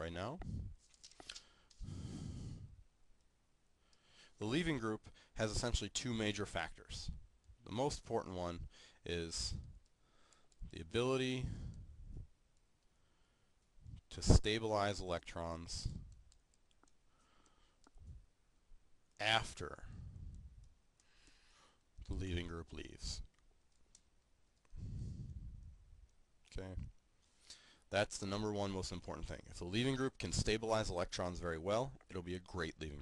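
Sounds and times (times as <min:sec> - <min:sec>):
man breathing into microphone: 0:00.4 - 0:02.8, 0:24.7 - 0:25.6.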